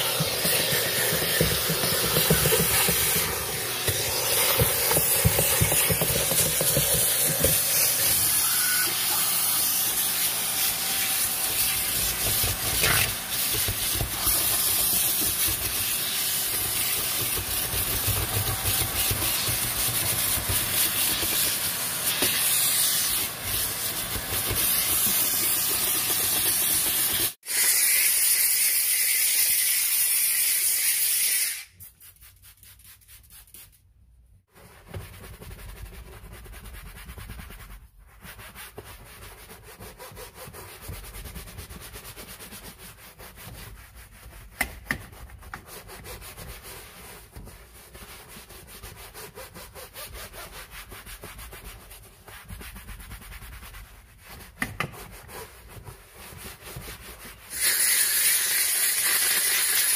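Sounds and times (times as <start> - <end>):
steam cleaner hissing: 0.0 - 31.7, 57.5 - 59.9.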